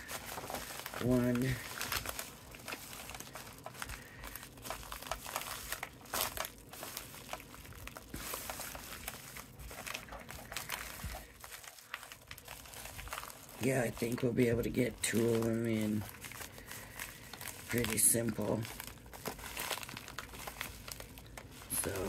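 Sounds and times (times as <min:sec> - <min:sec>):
plastic mailer crinkling: 0:00.0 - 0:22.0.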